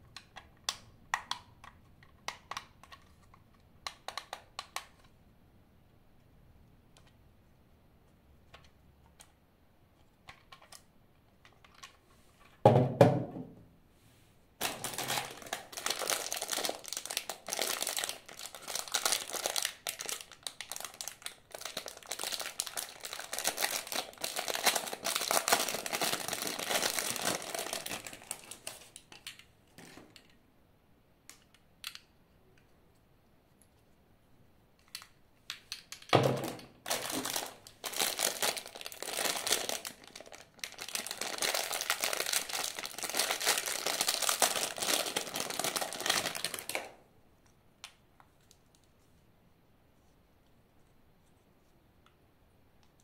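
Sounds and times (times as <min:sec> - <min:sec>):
plastic bag crinkling: 0:14.6 - 0:29.3, 0:36.7 - 0:47.0.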